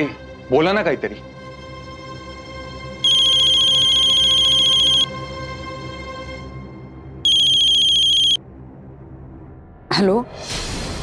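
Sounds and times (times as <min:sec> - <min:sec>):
mobile phone ringing: 0:03.0 - 0:05.1, 0:07.3 - 0:08.4.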